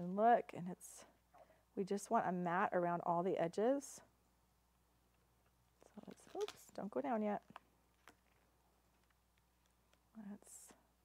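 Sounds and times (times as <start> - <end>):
faint low room hum: 0.0 - 11.0.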